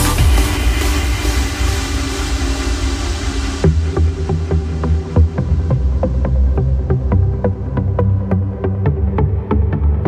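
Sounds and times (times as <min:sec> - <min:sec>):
electronic dance music: 0:00.0 - 0:05.9.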